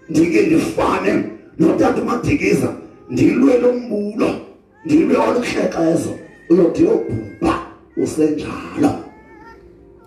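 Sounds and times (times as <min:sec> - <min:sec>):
man preaching through loudspeaker: 0:00.0 - 0:09.2.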